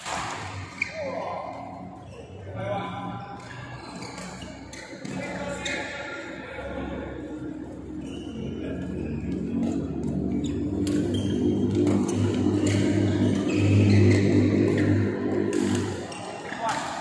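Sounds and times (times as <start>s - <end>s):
loud low drone: 6.4s - 16.3s
racket hitting shuttlecock: 10.8s - 17.0s.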